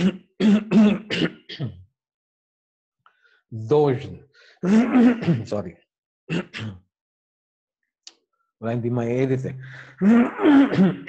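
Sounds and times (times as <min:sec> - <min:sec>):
man coughing and clearing throat: 0:00.0 - 0:01.8, 0:04.6 - 0:05.7, 0:06.3 - 0:06.8, 0:09.5 - 0:11.0.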